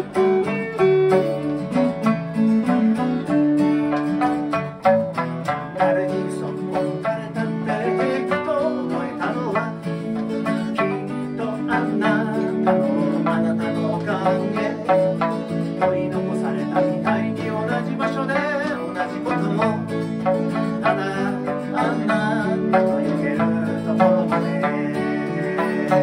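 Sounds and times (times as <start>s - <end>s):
acoustic guitars strummed: 0.0s - 26.0s
twangy plucked lute: 0.0s - 26.0s
man singing slow song: 5.6s - 26.0s.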